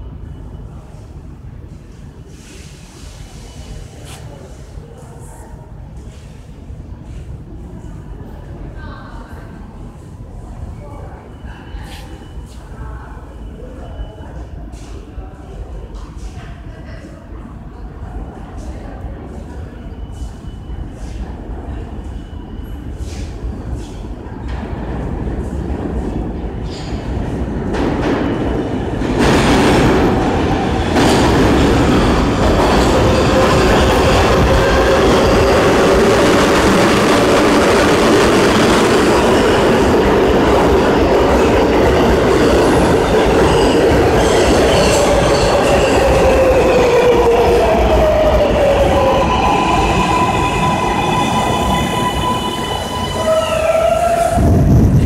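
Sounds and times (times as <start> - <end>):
subway train running and wheel noise: 0.0 - 55.0.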